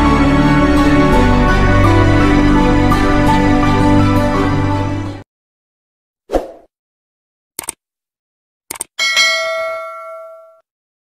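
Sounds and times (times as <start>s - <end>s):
notification bell ding: 9.0s - 10.6s.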